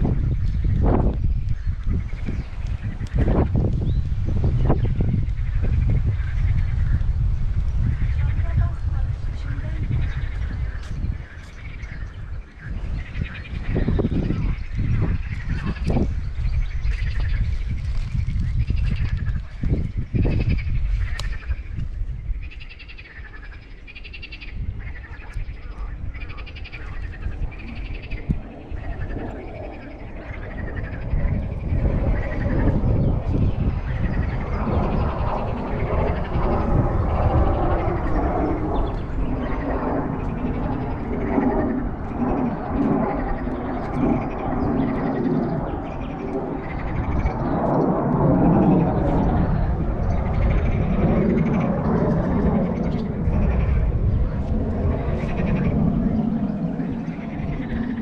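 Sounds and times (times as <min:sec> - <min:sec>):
steady low rumble: 0:00.0 - 0:58.0.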